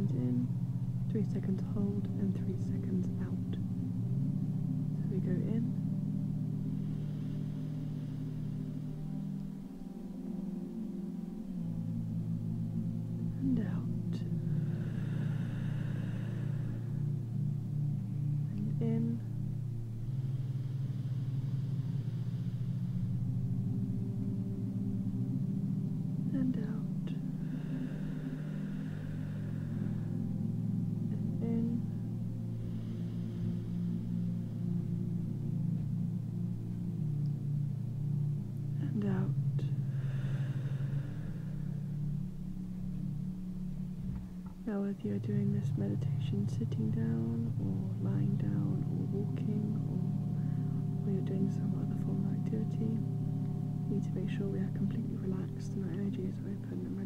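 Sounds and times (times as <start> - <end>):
slow deep breaths: 0.0 - 46.3, 47.5 - 51.7
low drone of held tones: 0.0 - 57.0.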